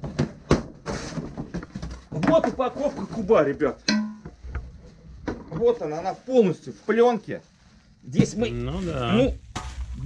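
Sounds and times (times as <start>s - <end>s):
plastic wrap rustling: 0.8s - 3.8s, 4.4s - 10.0s.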